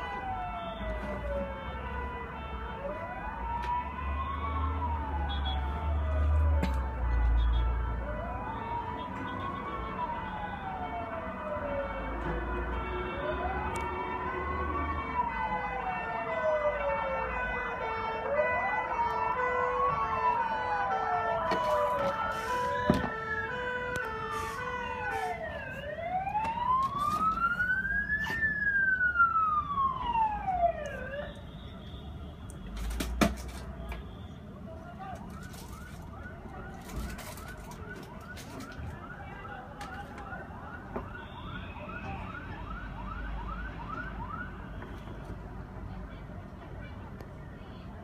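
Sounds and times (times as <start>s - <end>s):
siren wailing: 0.0s - 31.4s, 35.1s - 44.7s.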